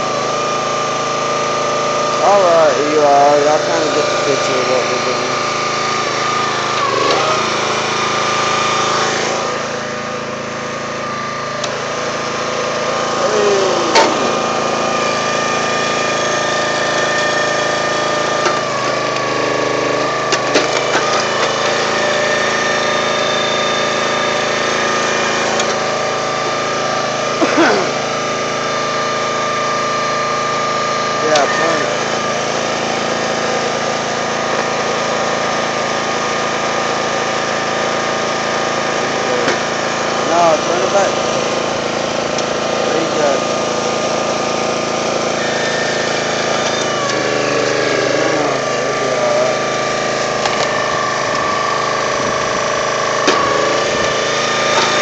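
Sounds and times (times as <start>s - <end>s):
constant whine: 0.0s - 35.8s, 39.0s - 55.0s
small gasoline engine running: 0.0s - 55.0s.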